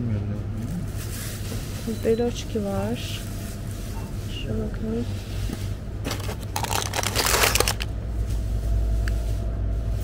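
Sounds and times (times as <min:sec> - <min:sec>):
plastic wrappers crinkling: 0:06.1 - 0:08.0.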